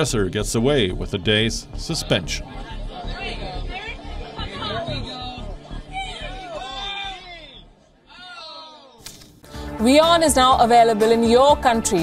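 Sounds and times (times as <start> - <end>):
background music: 0.0 - 12.0
young voices chattering: 2.4 - 8.1.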